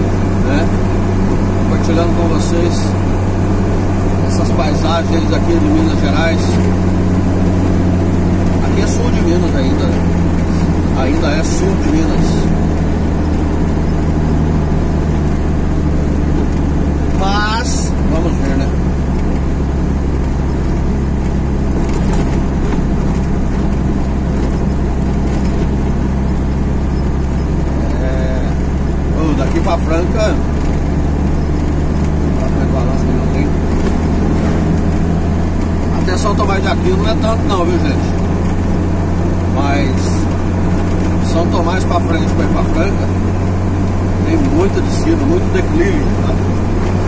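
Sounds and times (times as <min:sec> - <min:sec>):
vehicle engine and tyre drone: 0:00.0 - 0:47.0.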